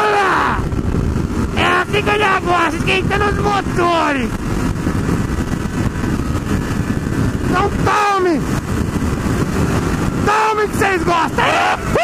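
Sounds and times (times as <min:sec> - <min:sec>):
road noise: 0:00.0 - 0:12.0
wind rushing over microphone: 0:00.0 - 0:12.0
motorcycle engine cruising: 0:00.6 - 0:12.0.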